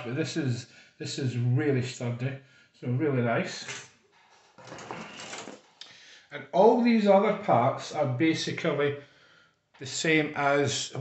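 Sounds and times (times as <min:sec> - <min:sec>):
plastic parts scraping: 0:03.7 - 0:05.8.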